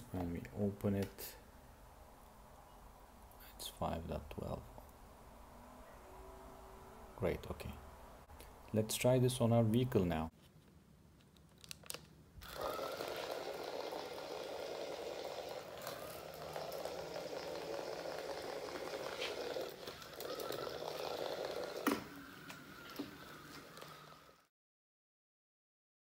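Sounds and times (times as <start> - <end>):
small motors whining: 12.4 - 24.5.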